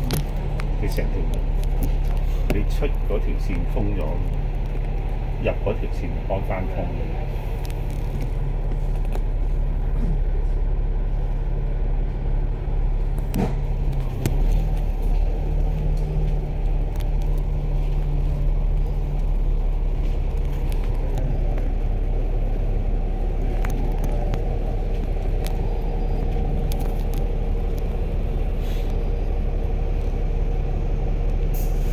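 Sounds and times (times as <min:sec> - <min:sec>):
bus diesel engine drone: 0:00.0 - 0:31.9.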